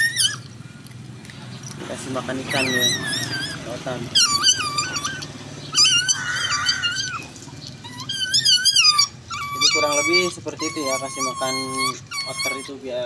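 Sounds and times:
baby otter squealing: 0.0s - 0.5s, 2.2s - 13.0s.

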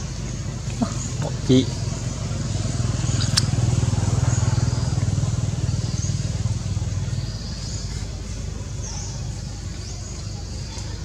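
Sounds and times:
vehicle engine humming: 0.0s - 11.0s
sharp click: 3.2s - 3.5s.

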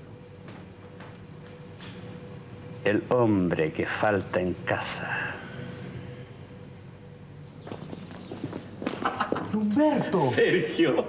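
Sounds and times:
footsteps on tiled floor: 7.6s - 10.2s.

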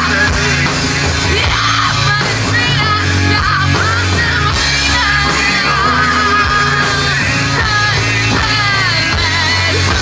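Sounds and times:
bass guitar: 0.0s - 10.0s
drum kit: 0.0s - 10.0s
electric guitar: 0.0s - 10.0s
woman singing: 0.0s - 10.0s.

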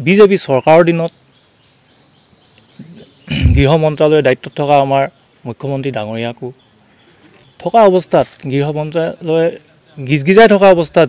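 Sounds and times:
faint outdoor background noise: 0.0s - 11.0s
short vocal sound: 2.8s - 3.7s
man speaking: 2.9s - 6.6s, 7.6s - 11.0s.

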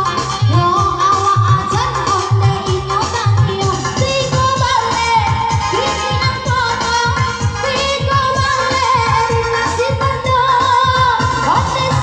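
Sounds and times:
electronic backing music with beat: 0.0s - 12.0s.

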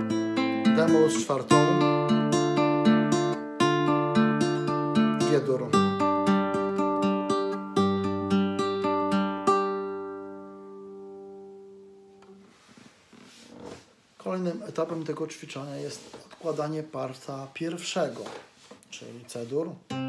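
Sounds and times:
classical guitar fingerpicked: 0.0s - 12.4s.

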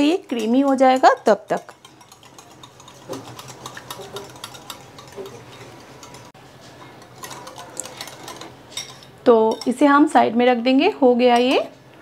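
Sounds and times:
whisk ticking against ceramic bowl: 0.0s - 9.8s.

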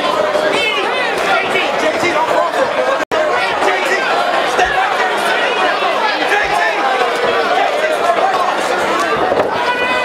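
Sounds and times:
crowd shouting and talking: 0.0s - 10.0s.

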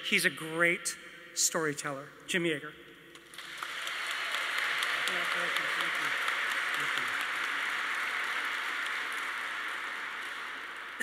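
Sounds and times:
audience applauding: 3.2s - 11.0s.

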